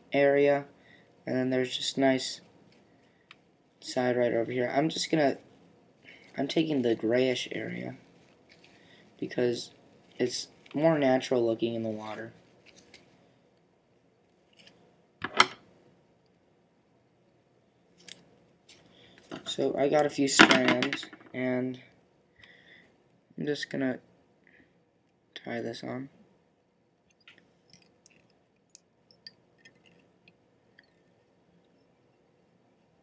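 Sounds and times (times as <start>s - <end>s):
light clicks of thread wrapping: 27.1s - 31.9s.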